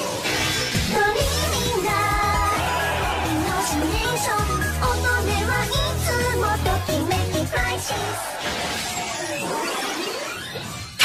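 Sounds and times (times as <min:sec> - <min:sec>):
electronic rap backing music: 0:00.6 - 0:09.7.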